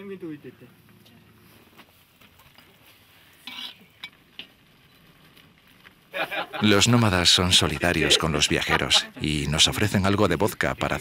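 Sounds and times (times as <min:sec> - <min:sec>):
faint stirring and handling: 0:00.5 - 0:06.4.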